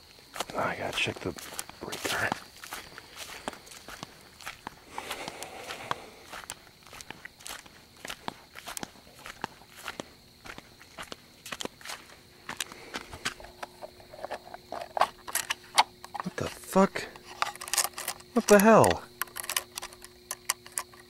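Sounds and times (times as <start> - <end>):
footsteps walking: 0.0 - 19.1.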